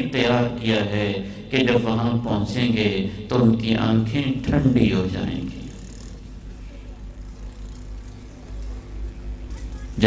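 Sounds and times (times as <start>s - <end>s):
low mains hum: 0.0s - 10.0s.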